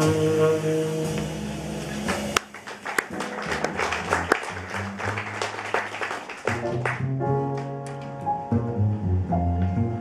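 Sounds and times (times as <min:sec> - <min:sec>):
double bass notes: 0:00.0 - 0:02.4, 0:06.4 - 0:10.0
live jazz group playing: 0:00.0 - 0:10.0.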